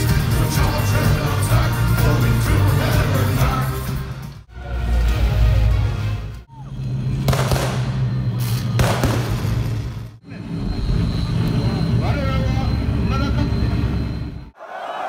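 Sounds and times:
person singing: 0.0s - 4.1s.

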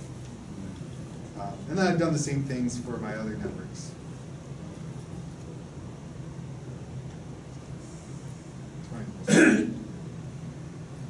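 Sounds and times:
low room hum: 0.0s - 11.0s
person coughing: 9.3s - 9.8s.

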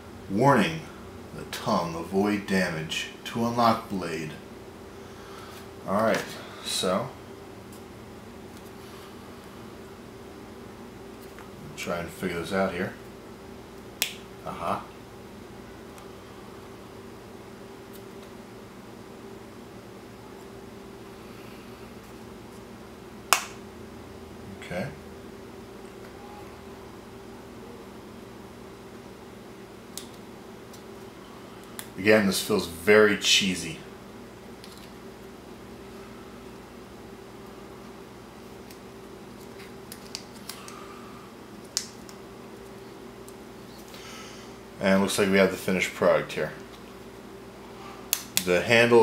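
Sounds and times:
steady low hum: 0.0s - 49.0s
sharp plastic snap: 23.3s - 23.6s.

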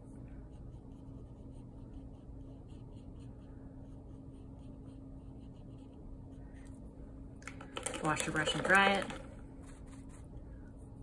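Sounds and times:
brush knocking plastic cup: 7.4s - 9.3s
paintbrush scraping cardboard: 8.2s - 10.4s.

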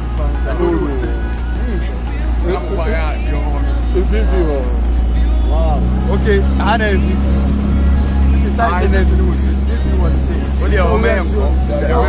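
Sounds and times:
outboard motor running: 0.0s - 12.0s
people's voices: 0.0s - 12.0s.

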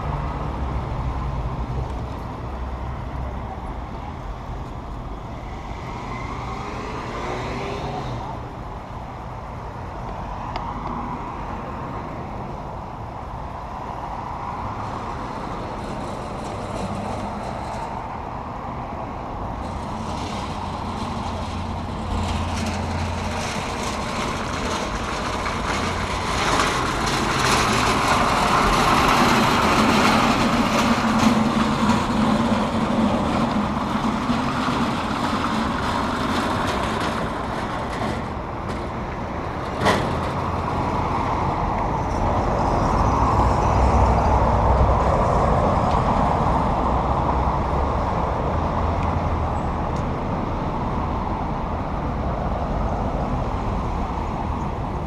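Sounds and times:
heavy vehicle engine hum: 0.0s - 55.0s
street traffic passing: 0.0s - 55.0s.

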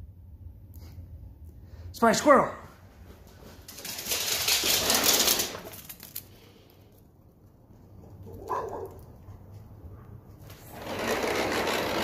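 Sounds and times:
sliding door rumbling on track: 4.0s - 5.7s, 10.4s - 12.0s.

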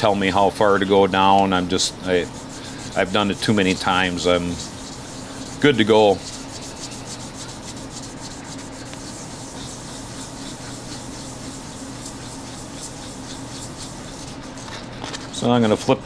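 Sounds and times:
metal rubbed on sandpaper: 0.0s - 15.3s.

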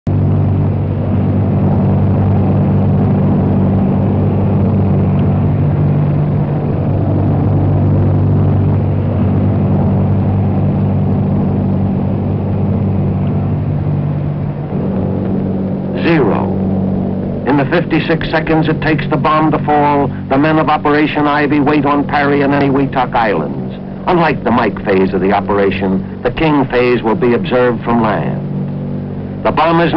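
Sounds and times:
aircraft engines droning: 0.0s - 29.9s.

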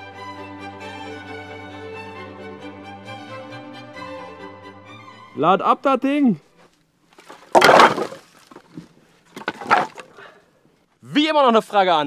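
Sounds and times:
firewood logs clattering onto woodpile: 7.1s - 10.2s.

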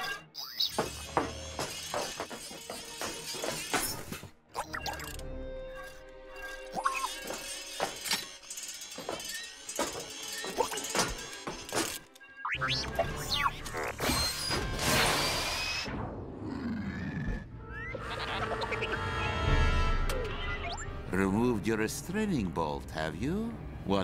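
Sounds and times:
background music: 0.0s - 8.7s, 17.5s - 24.0s.

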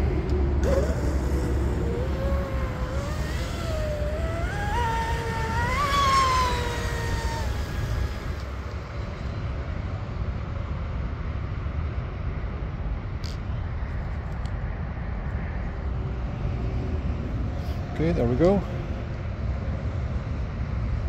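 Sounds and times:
electric motor whine: 0.0s - 9.2s.

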